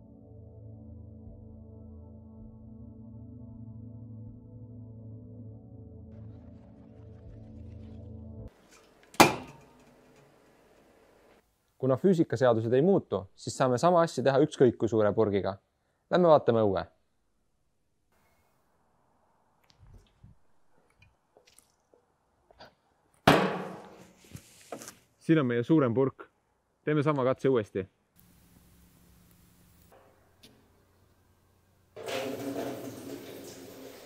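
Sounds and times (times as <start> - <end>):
can imploding with a crack: 8.6 - 10.0
knock on steel drum ringing: 23.3 - 24.0.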